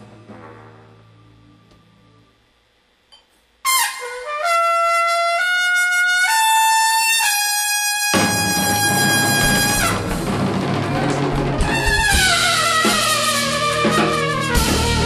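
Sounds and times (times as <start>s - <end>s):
jazz band with drums and bass: 0.0s - 1.0s, 6.0s - 15.0s
trumpet playing jazz phrase: 3.6s - 15.0s.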